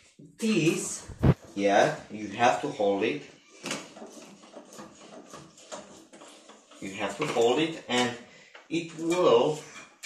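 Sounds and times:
person speaking: 0:00.4 - 0:03.3, 0:06.8 - 0:09.7.

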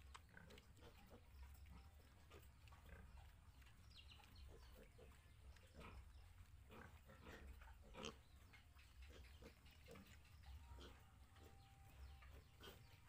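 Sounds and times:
piglets grunting: 0:04.4 - 0:13.0.

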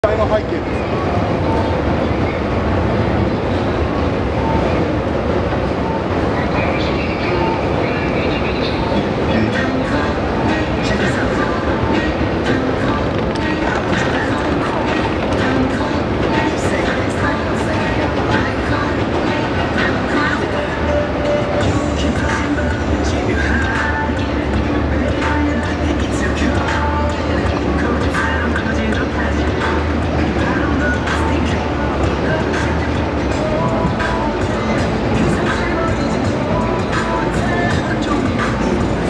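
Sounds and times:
rail noise: 0:00.0 - 0:39.0
traffic rumble: 0:00.0 - 0:39.0
voices of passersby: 0:00.0 - 0:39.0.

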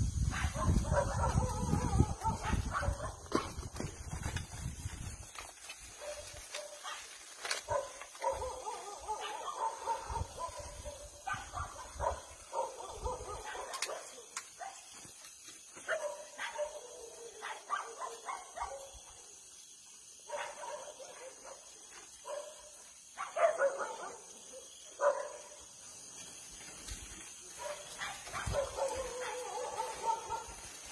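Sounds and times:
dogs barking: 0:00.3 - 0:03.5, 0:06.0 - 0:07.1, 0:07.7 - 0:14.9, 0:15.8 - 0:19.0, 0:20.2 - 0:25.6, 0:27.6 - 0:30.7.

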